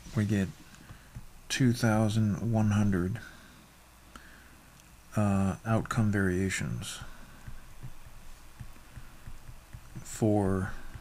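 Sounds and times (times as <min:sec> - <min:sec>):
low electrical hum: 0:00.0 - 0:11.0
stylus knocking on tablet: 0:00.8 - 0:01.3, 0:07.0 - 0:11.0.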